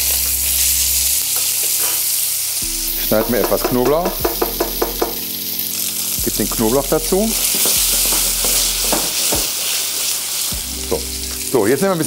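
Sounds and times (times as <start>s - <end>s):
fish frying in hot oil: 0.0s - 12.0s.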